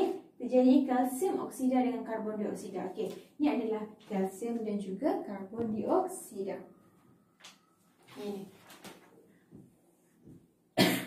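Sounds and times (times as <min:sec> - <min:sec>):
woman coughing: 0:10.8 - 0:11.0.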